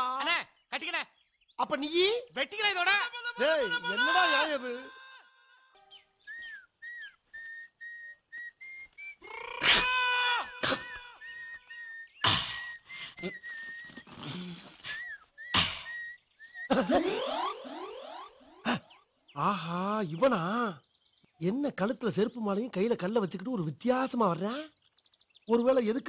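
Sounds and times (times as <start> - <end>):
man whistling a tune: 6.3 - 9.2.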